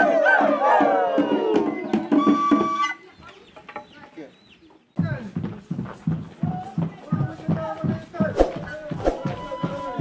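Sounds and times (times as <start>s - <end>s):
voices: 6.4s - 10.0s.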